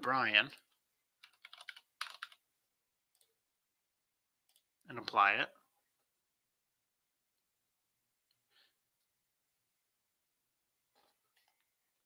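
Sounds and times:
faint keyboard keystrokes: 0:00.0 - 0:02.4.

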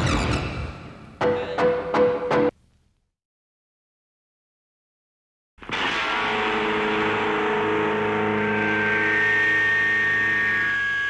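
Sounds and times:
droning punk rock intro: 0:05.6 - 0:11.0.

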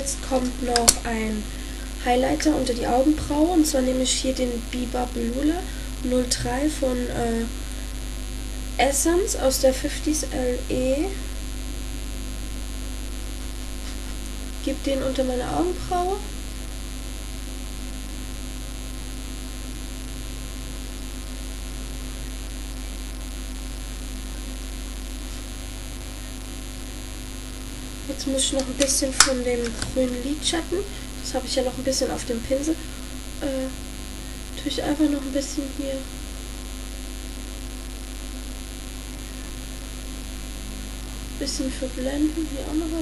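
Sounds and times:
electrical mains hum: 0:00.0 - 0:43.0.

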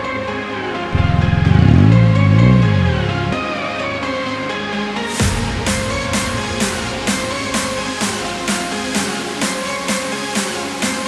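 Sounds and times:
background music: 0:00.0 - 0:11.0
car engine starting and revving: 0:00.9 - 0:03.8.

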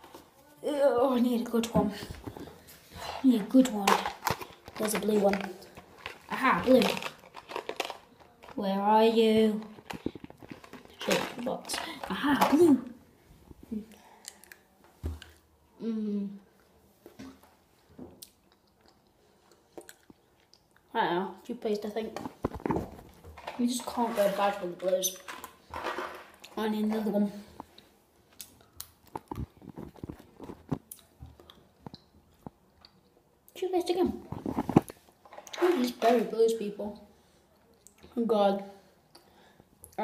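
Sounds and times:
person chewing: 0:18.2 - 0:20.9.

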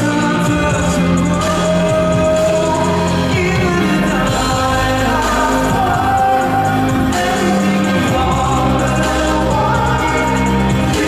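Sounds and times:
backing track: 0:00.0 - 0:11.0
choir-like backing voices: 0:00.0 - 0:11.0
man singing pop ballad: 0:00.0 - 0:11.0.

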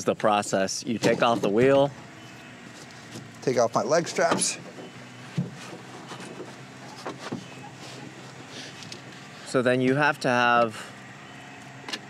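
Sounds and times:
light rustling: 0:04.1 - 0:09.5.

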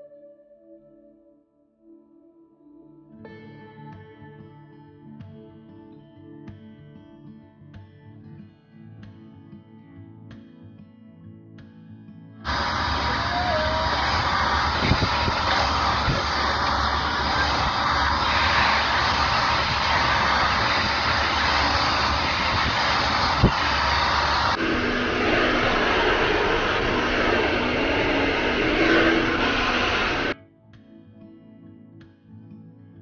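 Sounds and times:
hair dryer blowing: 0:12.5 - 0:30.4.

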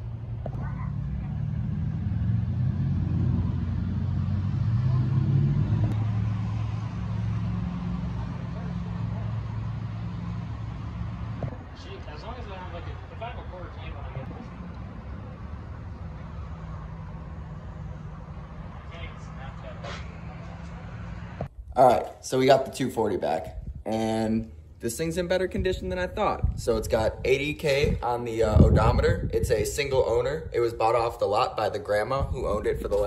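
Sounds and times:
vehicle engine idling: 0:00.0 - 0:21.5.

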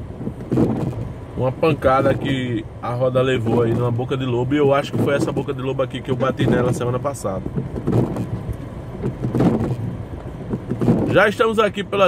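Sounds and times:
car engine idling: 0:00.0 - 0:12.0
windshield wipers sweeping: 0:00.0 - 0:12.0.

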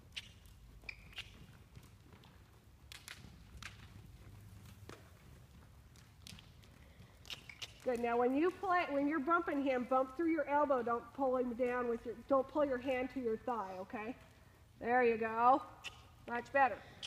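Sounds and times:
horse trotting on dirt: 0:00.0 - 0:15.3.

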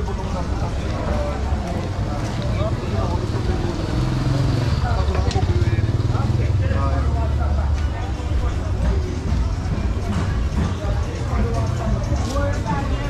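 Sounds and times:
engine humming: 0:00.0 - 0:12.2
people talking: 0:00.0 - 0:13.0.

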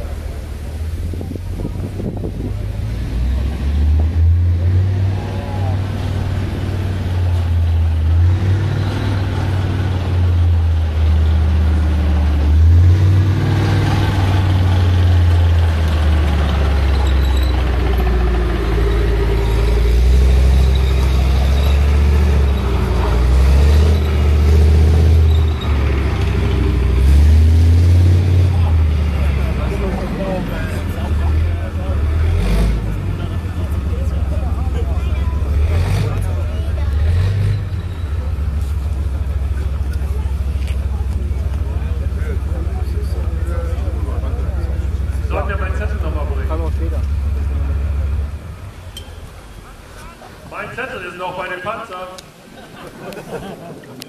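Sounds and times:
tank diesel engine driving past: 0:00.0 - 0:54.0.

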